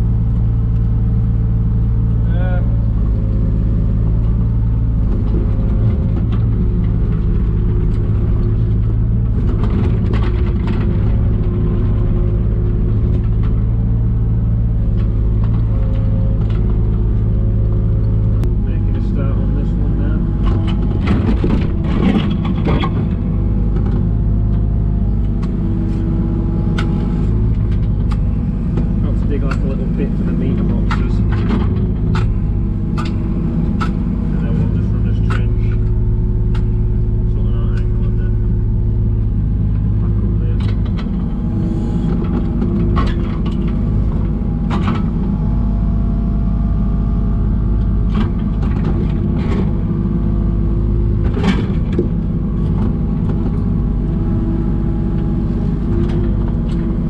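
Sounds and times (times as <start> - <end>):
diesel engine running under load: 0.0 - 57.0.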